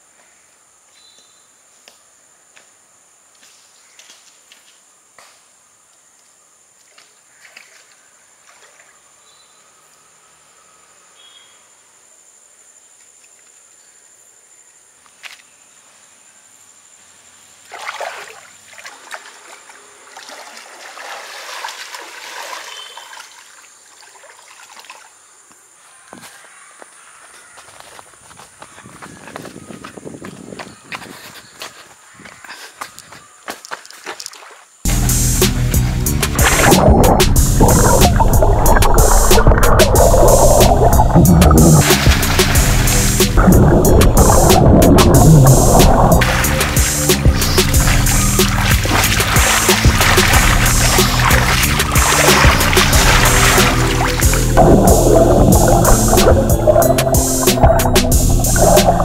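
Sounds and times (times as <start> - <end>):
water sloshing and splashing: 17.6 - 25.2, 36.4 - 59.0
light footsteps: 26.1 - 34.6
high insect drone: 41.8 - 57.5.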